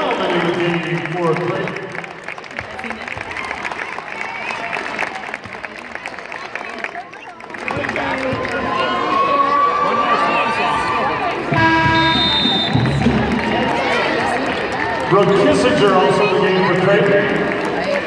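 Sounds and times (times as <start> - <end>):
crowd chatter: 0.0 - 18.0
buzzer-like horn: 11.5 - 13.0.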